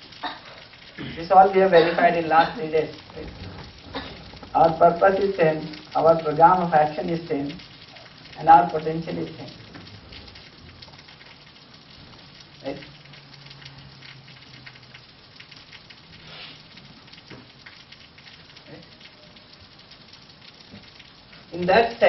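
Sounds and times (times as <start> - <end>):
crackling hiss: 0.0 - 22.0.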